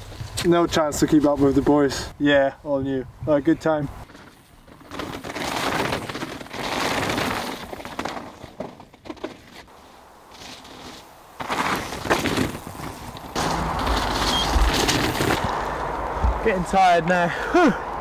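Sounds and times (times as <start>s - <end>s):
bike tyres on rocky dirt: 0.0s - 18.0s
bike rattling: 3.5s - 17.8s.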